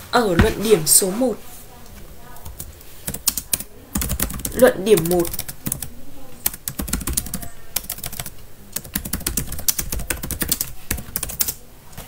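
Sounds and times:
typing on a computer keyboard: 2.5s - 11.6s.

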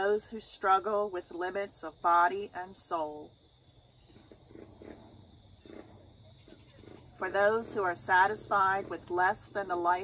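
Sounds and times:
low outdoor rumble: 0.0s - 10.0s
distant animal calls: 3.8s - 9.6s.

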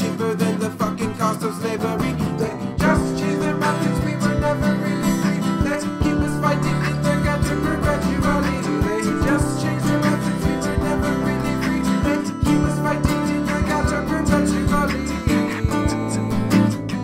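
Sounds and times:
acoustic guitars: 0.0s - 17.0s
low bass line: 1.9s - 17.0s
microphone tapping beat: 2.0s - 17.0s.

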